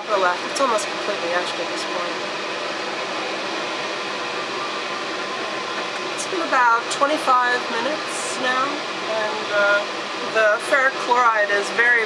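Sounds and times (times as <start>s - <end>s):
exhaust fan rushing air: 0.0s - 12.0s.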